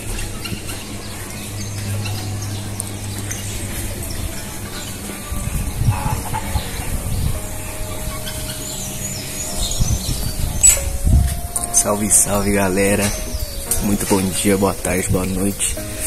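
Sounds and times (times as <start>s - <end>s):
chickens clucking: 0.0s - 16.0s.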